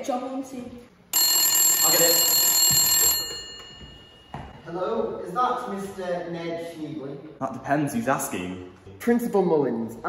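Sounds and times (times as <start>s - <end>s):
telephone ringing: 1.1s - 4.6s.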